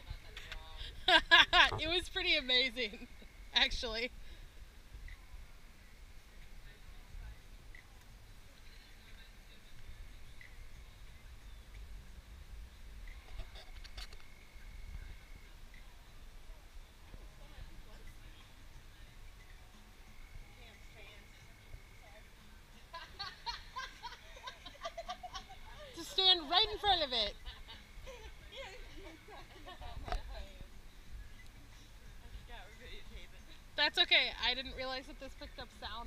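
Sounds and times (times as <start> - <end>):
faint voices and laughter: 0.0 - 4.6, 13.1 - 33.8
thin steady high tone: 0.0 - 36.0
low rumble: 1.4 - 3.7.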